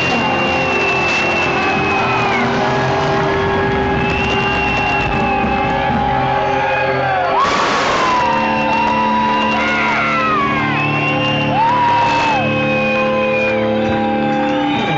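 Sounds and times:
electric guitars holding notes: 0:00.0 - 0:14.9
cymbal crash: 0:07.4 - 0:09.0.

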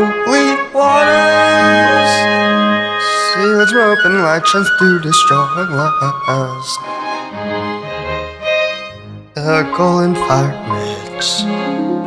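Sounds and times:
sustained string-like notes: 0:00.0 - 0:12.0.

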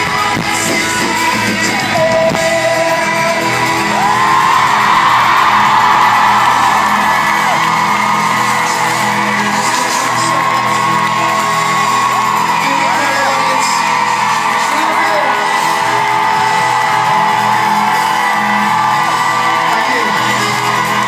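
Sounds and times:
crowd whooping and screaming: 0:00.0 - 0:21.0
live pop-rock band playing: 0:00.0 - 0:21.0.

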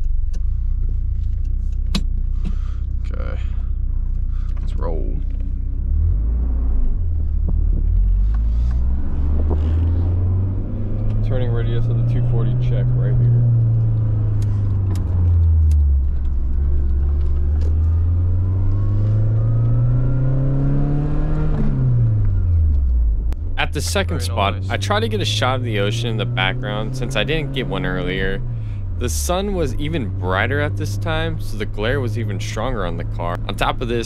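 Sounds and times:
car engine accelerating: 0:00.0 - 0:34.0.

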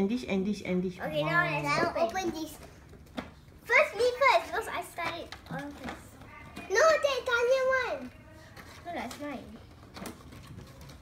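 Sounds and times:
children talking and exclaiming: 0:01.0 - 0:02.9, 0:03.6 - 0:09.6.

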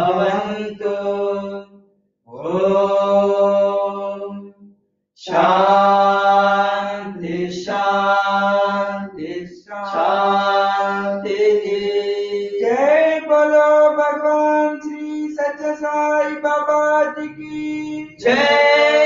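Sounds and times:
person chanting a mantra: 0:00.0 - 0:01.6, 0:02.3 - 0:04.4, 0:05.2 - 0:19.0.

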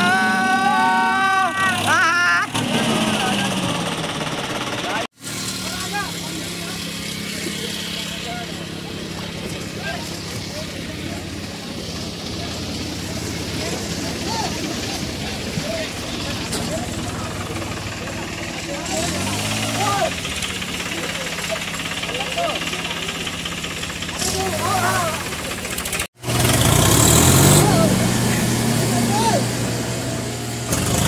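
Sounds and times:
tractor diesel engines running: 0:00.0 - 0:31.0.

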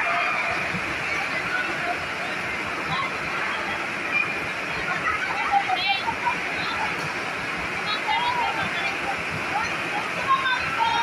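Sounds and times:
crowd shouts and cheers: 0:00.0 - 0:07.1
crowd voices din: 0:00.0 - 0:11.0.

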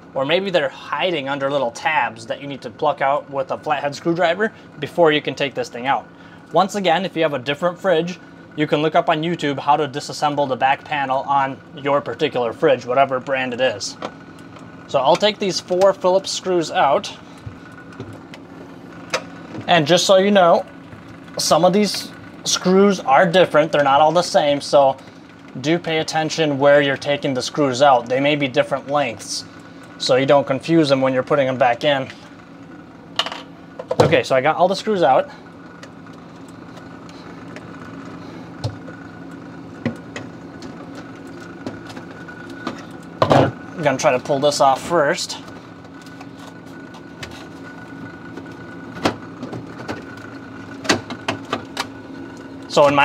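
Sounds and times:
refrigerator hum: 0:00.0 - 0:53.0.

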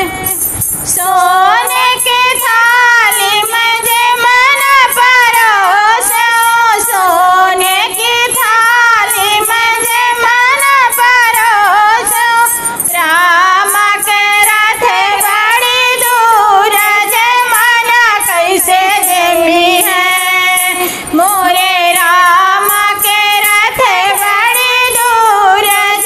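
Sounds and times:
women singing devotional song: 0:00.0 - 0:26.0.

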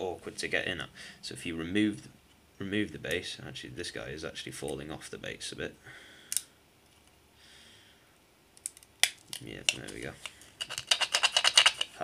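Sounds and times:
handling plastic miniature: 0:08.6 - 0:12.0.

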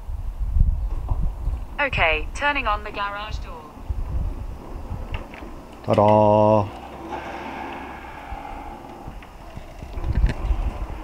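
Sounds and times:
low rumble: 0:00.5 - 0:11.0
garage door opener motor hum: 0:06.7 - 0:11.0.

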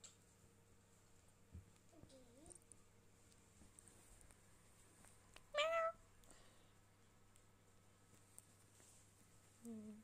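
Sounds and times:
cat meowing: 0:05.5 - 0:06.0.

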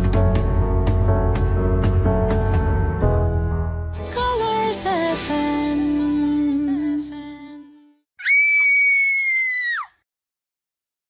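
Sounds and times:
music: 0:00.0 - 0:08.0
girl screaming: 0:08.2 - 0:10.0.

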